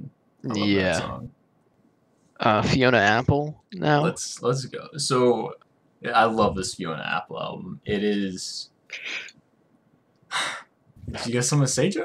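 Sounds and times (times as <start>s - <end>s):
person breathing: 10.3s - 10.7s.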